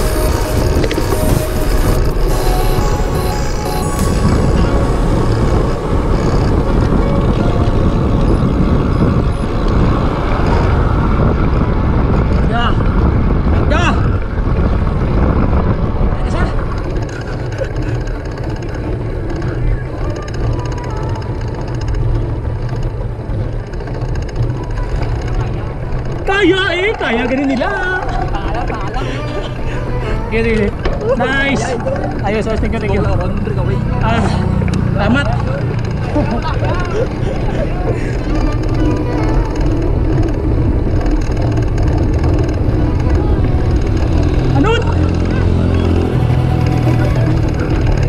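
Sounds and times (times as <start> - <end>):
tyres rumbling on concrete road: 0.0 - 48.0
wind buffeting microphone: 0.0 - 48.0.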